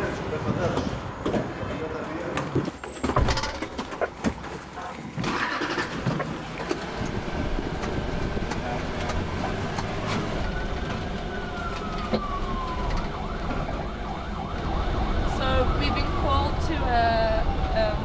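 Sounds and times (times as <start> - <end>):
vehicle engine and road noise: 0.0 - 18.0.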